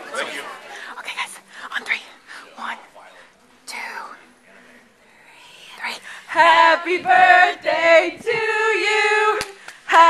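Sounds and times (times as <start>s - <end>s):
person whispering: 3.7s - 4.4s, 5.0s - 6.0s.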